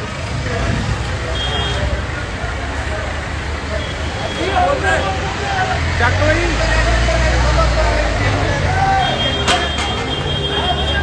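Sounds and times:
indistinct crowd voices: 0.0s - 11.0s
low rumble of vehicles: 0.0s - 11.0s.

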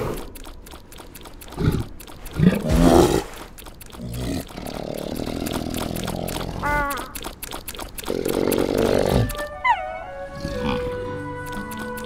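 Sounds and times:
cartoon music with sliding notes: 9.2s - 12.0s.

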